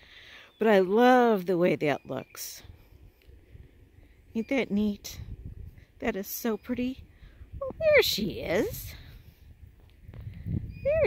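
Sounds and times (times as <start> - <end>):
woman's high-pitched voice: 7.6 - 9.1.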